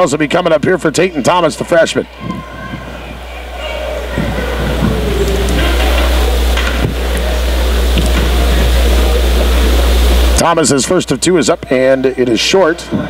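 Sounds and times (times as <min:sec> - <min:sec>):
indoor crowd murmur and chatter: 0:00.0 - 0:13.0
steady low hum: 0:00.0 - 0:13.0.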